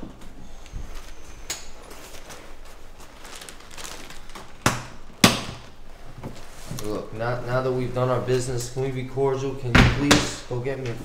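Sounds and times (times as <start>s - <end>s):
paper rustling: 0.8s - 4.6s.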